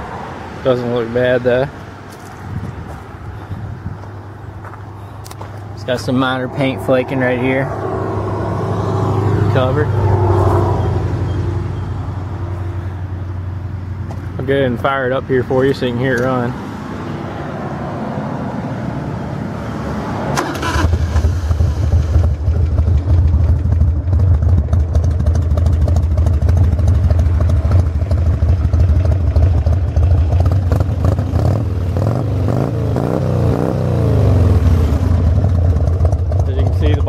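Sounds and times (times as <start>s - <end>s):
motorcycle engine starting and revving: 5.9s - 12.0s, 20.2s - 37.0s.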